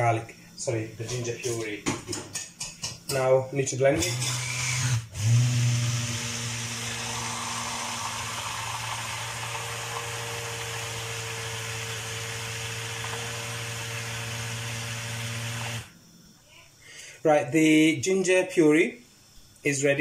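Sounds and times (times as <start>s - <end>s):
immersion blender whirring: 4.0s - 15.9s.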